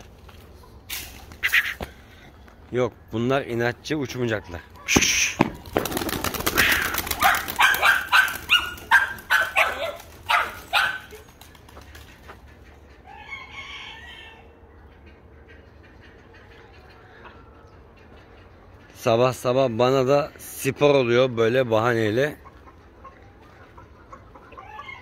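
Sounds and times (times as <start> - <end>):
chickens calling: 0.0 - 25.0
faint bird call: 1.4 - 2.3
pigeons flapping wings: 4.9 - 12.4.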